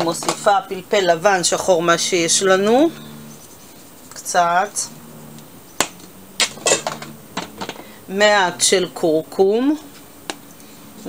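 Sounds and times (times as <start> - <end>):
spice jars rattling and scraping: 0.0 - 0.9, 5.8 - 8.0.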